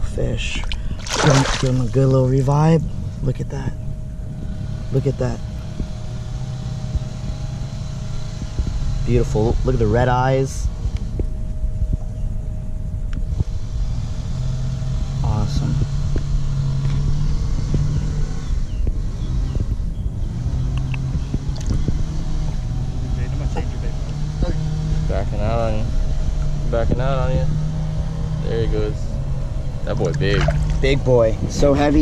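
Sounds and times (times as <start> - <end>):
boat motor humming: 0.0 - 32.0.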